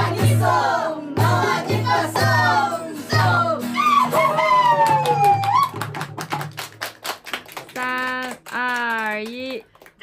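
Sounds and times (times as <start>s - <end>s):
hands clapping: 4.6s - 10.0s.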